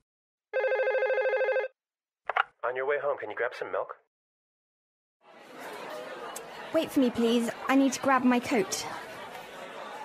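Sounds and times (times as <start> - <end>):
trilling electronic telephone ring: 0.6 - 1.8.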